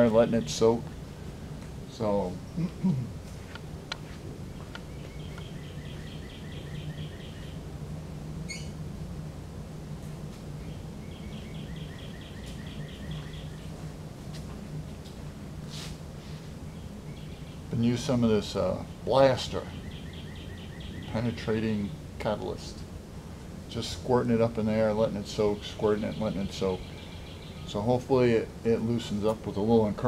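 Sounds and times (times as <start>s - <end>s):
steady low hum: 0.0s - 30.0s
small bird trilling: 8.5s - 8.8s.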